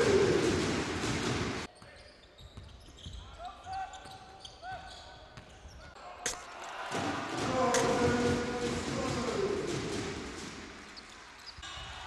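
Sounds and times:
arena crowd noise: 0.0 - 2.0, 5.9 - 12.0
basketball bouncing on court: 0.1 - 1.7, 6.9 - 10.7.

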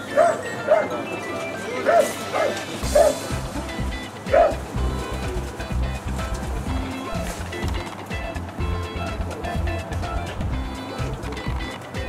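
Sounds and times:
lounge music: 0.0 - 12.0
dog yipping: 0.1 - 1.0, 1.8 - 3.2, 4.3 - 4.6.

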